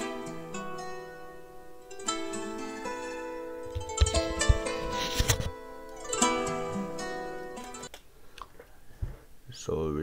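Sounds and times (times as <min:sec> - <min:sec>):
pitched-up plucked zither melody: 0:00.0 - 0:07.9.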